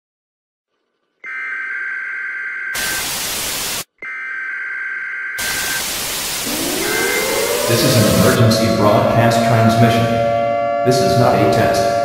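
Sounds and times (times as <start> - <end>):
loud tv static burst: 2.8 - 3.9, 5.4 - 8.4
two-note electronic tone: 6.4 - 9.1.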